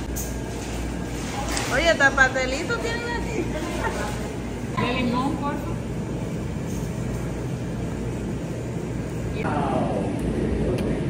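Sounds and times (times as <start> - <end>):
low background rumble and hum: 0.0 - 11.0.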